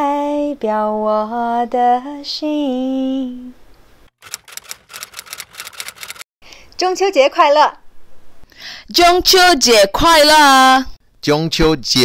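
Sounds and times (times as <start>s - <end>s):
keyboard typing clicks: 4.2s - 6.2s.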